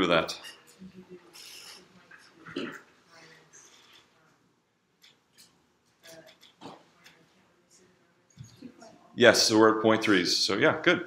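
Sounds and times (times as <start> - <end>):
faint indistinct voices: 0.3 - 9.2.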